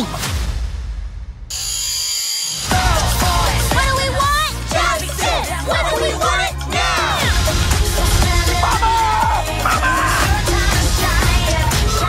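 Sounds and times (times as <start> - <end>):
soundtrack music with heavy bass: 0.0 - 1.4, 2.6 - 12.0.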